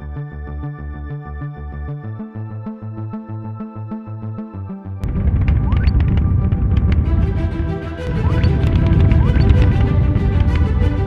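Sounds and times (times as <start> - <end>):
music: 0.0 - 11.0
deep rocket launch rumble: 5.0 - 11.0.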